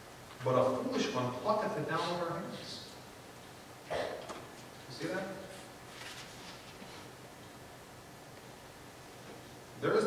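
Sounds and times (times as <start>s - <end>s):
soft hiss: 0.0s - 10.0s.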